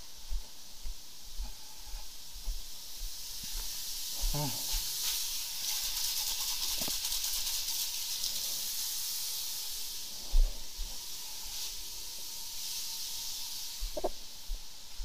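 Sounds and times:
high-pressure water spraying: 0:01.5 - 0:15.0.

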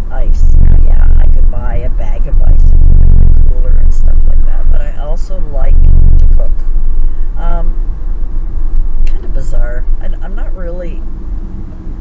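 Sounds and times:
woman speaking: 0:00.0 - 0:07.8, 0:09.0 - 0:11.0
road rumble inside car: 0:00.0 - 0:12.0.

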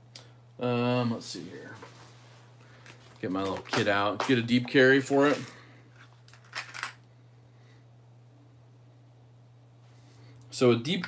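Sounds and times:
faint steady hum: 0:00.0 - 0:11.0
small metal parts clinking: 0:06.3 - 0:07.0.

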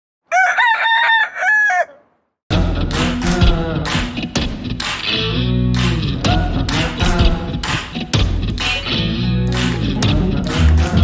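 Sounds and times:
rooster crowing: 0:00.3 - 0:02.2.

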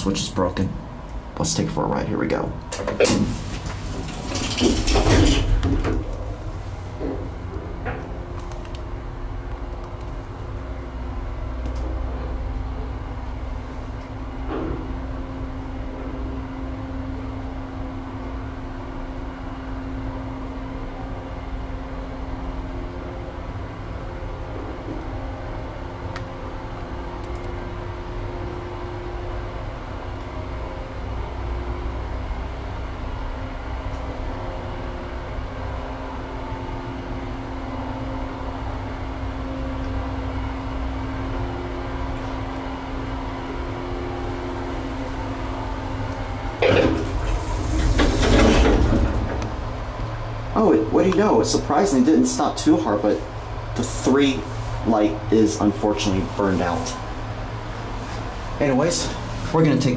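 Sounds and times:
elevator car rumble and hum: 0:00.0 - 0:59.9
ventilation fan running: 0:00.0 - 0:59.9.

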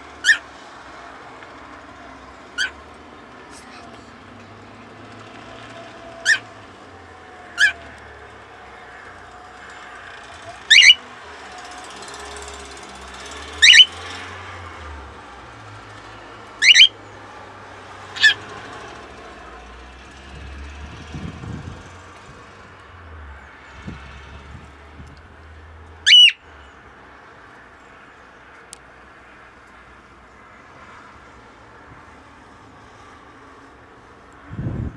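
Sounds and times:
cockatiel chirping: 0:07.6 - 0:07.8, 0:10.7 - 0:11.0, 0:13.6 - 0:13.9, 0:16.6 - 0:16.9, 0:26.1 - 0:26.4.

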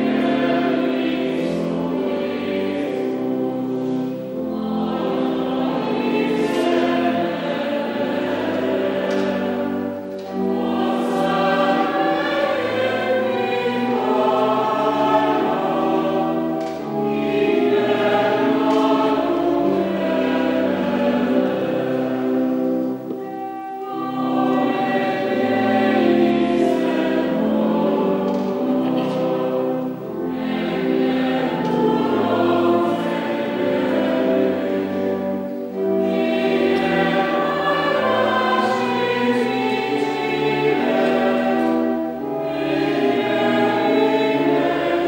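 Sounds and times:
choir singing: 0:00.0 - 0:45.0.

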